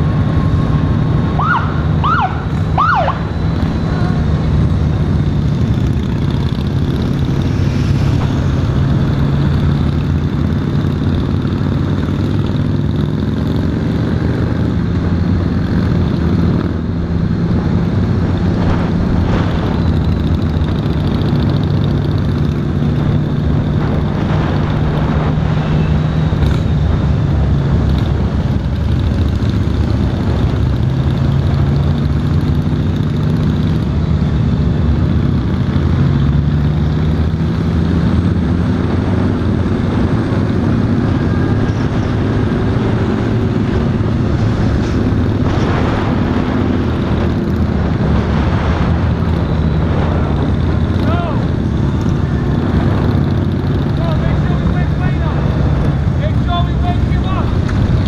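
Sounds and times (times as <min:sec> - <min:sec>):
motorcycle engine running: 0:00.0 - 0:58.0
other motorcycle engines: 0:00.0 - 0:58.0.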